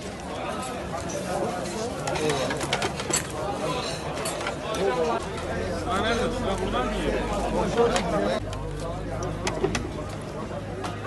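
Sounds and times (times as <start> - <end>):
crowd talking in restaurant: 0.0 - 11.0.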